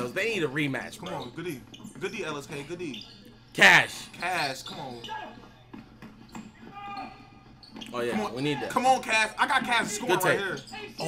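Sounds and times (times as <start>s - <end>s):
basketball bouncing on court: 4.1s - 9.9s.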